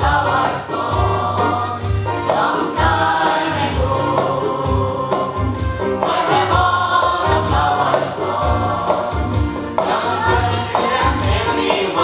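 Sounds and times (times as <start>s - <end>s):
jingling percussion: 0.0s - 12.0s
women singing in unison: 6.0s - 9.3s, 9.9s - 12.0s.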